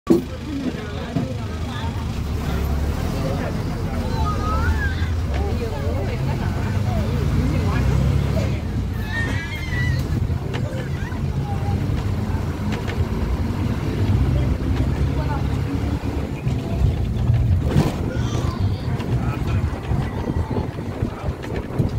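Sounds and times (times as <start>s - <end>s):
faint voices: 0.1s - 21.9s
vehicle engine rumble: 0.1s - 21.9s.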